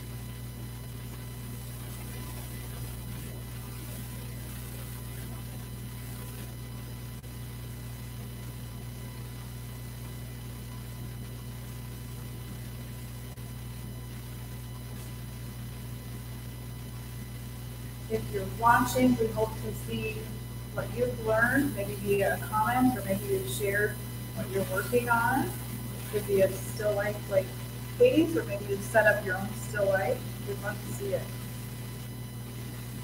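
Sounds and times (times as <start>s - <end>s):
electrical hum with hiss: 0.0s - 33.0s.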